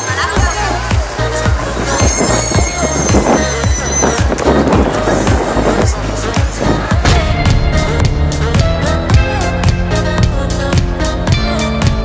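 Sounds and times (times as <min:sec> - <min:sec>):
steady drum beat: 0:00.4 - 0:11.5.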